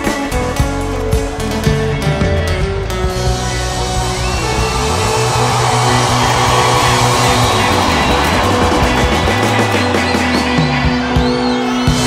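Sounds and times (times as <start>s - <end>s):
loud live band music: 0.0s - 12.0s
sustained low bass notes: 1.4s - 10.2s.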